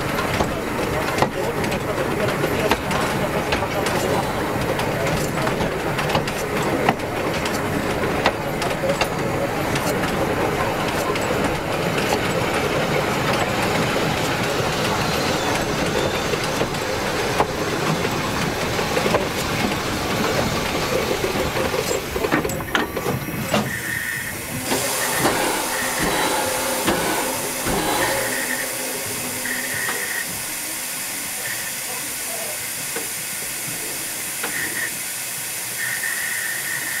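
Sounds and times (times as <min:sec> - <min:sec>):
train wheels rumbling on rails: 0:00.0 - 0:37.0
steady steam hiss: 0:23.0 - 0:37.0.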